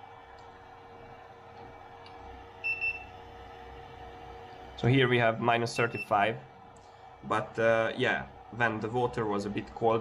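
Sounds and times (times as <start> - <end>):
steady background hum: 0.0 - 10.0
thermometer beep: 2.6 - 3.1, 5.8 - 6.2.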